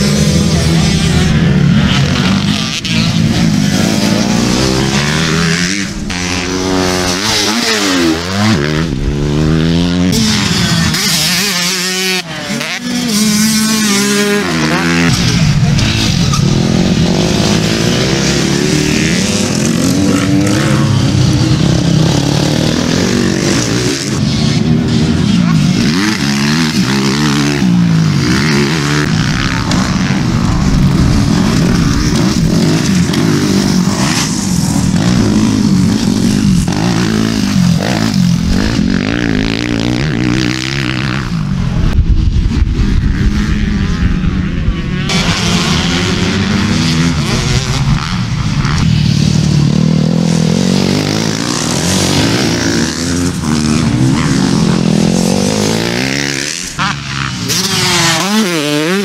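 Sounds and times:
motocross bikes revving: 0.0s - 59.0s.

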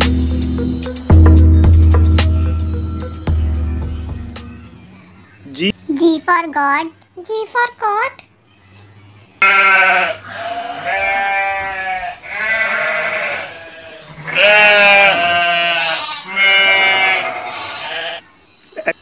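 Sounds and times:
goats bleating: 9.4s - 18.2s.

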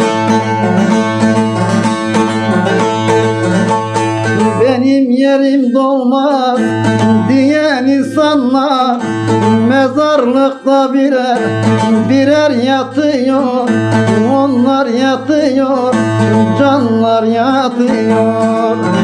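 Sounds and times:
long-necked lute strummed: 0.0s - 19.0s
man singing: 0.0s - 19.0s.

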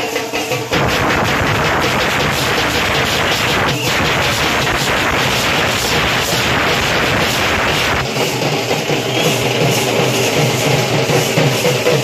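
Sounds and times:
crowd: 0.0s - 12.0s
music with steady drum beat: 0.0s - 12.0s
loud distorted dance music: 0.7s - 11.9s.

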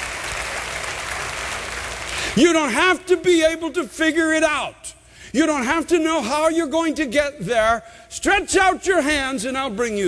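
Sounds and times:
crowd applauding: 0.0s - 2.4s.

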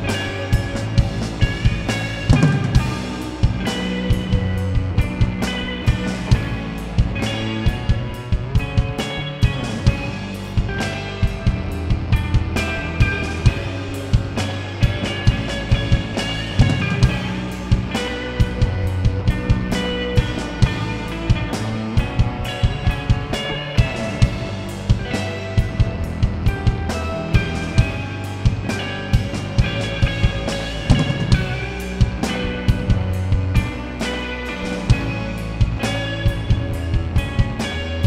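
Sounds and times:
drum strikes: 0.0s - 37.8s
rock band playing: 0.0s - 38.0s.

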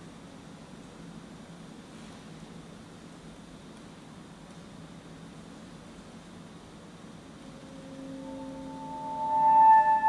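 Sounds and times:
background hiss: 0.0s - 10.0s
alto saxophone: 7.4s - 10.0s.

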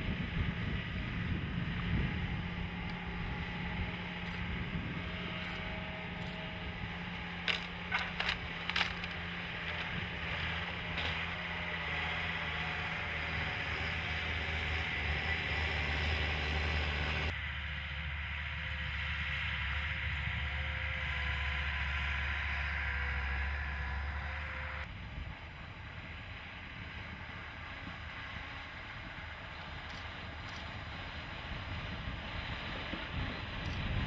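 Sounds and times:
track noise: 0.0s - 17.3s
tracked vehicle engine running: 0.0s - 34.0s
sticks snapping under tracks: 7.2s - 10.0s, 10.9s - 11.3s.

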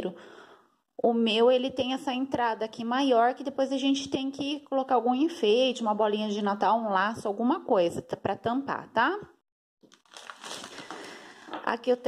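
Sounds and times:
plastic sweets bag crinkling: 9.8s - 11.6s
sweets spilling onto a table: 10.0s - 11.3s.

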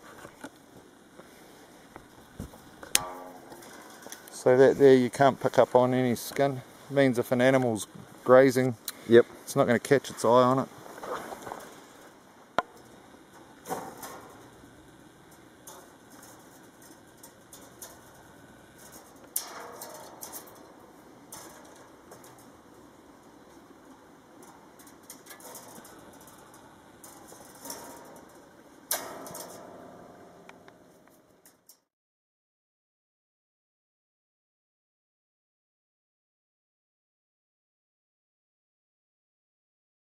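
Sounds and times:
wire clicking and scraping: 2.4s - 5.3s, 10.3s - 31.8s.

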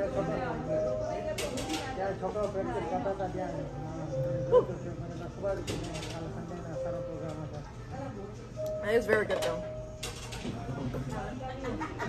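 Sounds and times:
chatter of diners: 0.0s - 12.0s
faint background music: 0.0s - 12.0s.

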